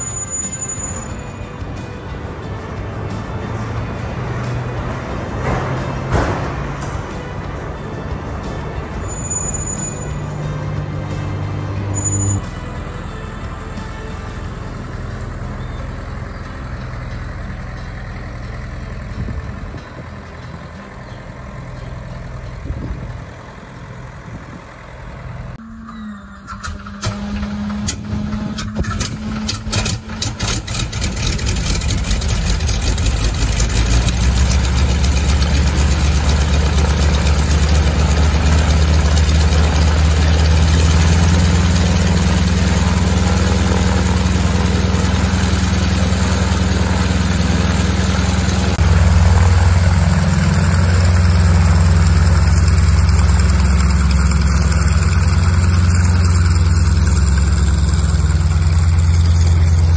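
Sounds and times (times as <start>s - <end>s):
radial aircraft engine starting: 0.0s - 59.9s.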